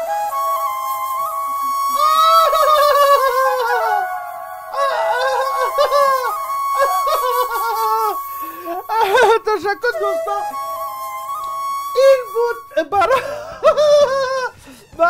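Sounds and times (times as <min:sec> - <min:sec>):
steady held tones: 0:00.0 - 0:13.0
flute-like melody: 0:00.0 - 0:15.0.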